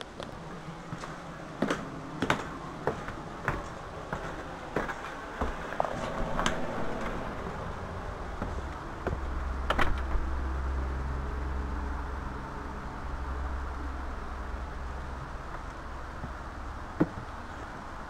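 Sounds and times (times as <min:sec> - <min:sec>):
low outdoor air rumble: 0:00.0 - 0:18.0.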